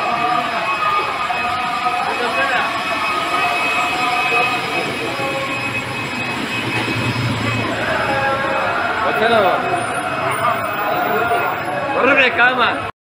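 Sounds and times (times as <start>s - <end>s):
indistinct voices of shoppers: 0.0s - 12.9s.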